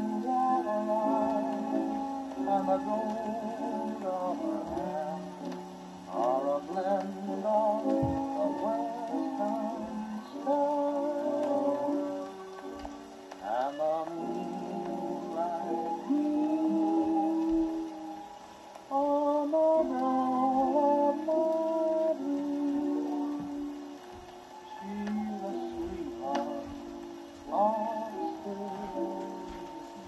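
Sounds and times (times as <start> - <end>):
old dance-band record playing: 0.0 - 30.0.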